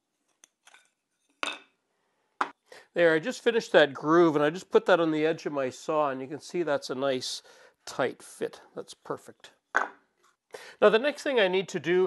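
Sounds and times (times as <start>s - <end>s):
wooden block knocking on metal: 9.8s - 10.0s.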